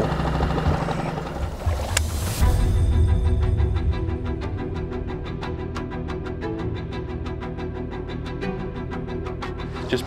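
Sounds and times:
electric trolling motor: 0.0s - 2.7s
water wash: 0.2s - 2.7s.

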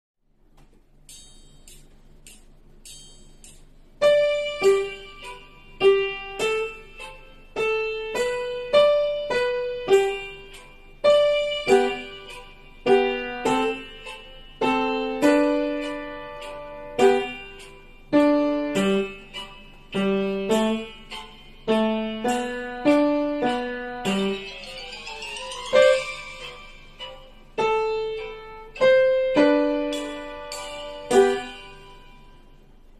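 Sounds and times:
slow piano melody: 3.4s - 32.9s.

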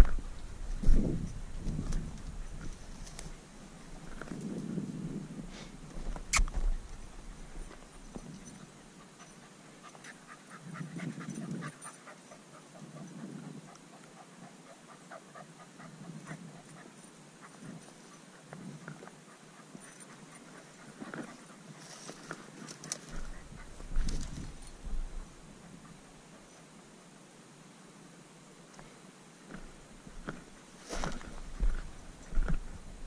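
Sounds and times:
footsteps on stony ground: 29.5s - 32.8s.

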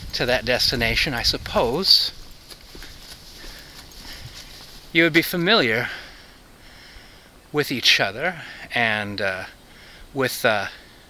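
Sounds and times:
soft footfalls on a trail: 0.0s - 6.2s
outdoor background noise: 0.0s - 11.0s.

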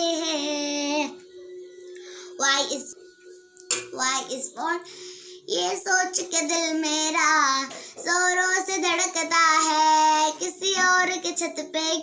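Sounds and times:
girl singing: 0.0s - 1.2s, 2.2s - 3.0s, 3.7s - 12.0s
faint steady hum: 0.0s - 12.0s.

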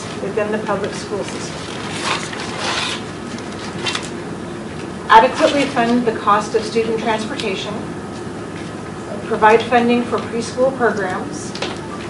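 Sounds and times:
paper rustling and sliding: 1.2s - 4.2s.

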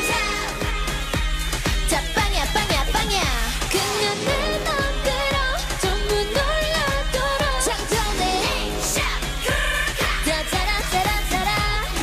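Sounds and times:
electronic beat and bass: 0.0s - 12.0s
women singing: 0.0s - 12.0s.

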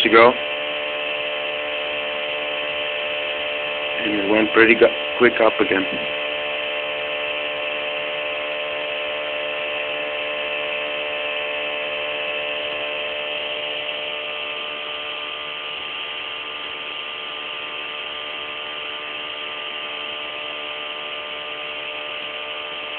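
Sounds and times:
pulse motor whining: 0.0s - 22.9s.

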